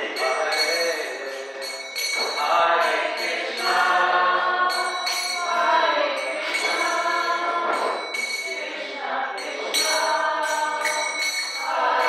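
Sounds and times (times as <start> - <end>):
group singing: 0.0 - 12.0
hand cymbals ringing: 0.0 - 12.0.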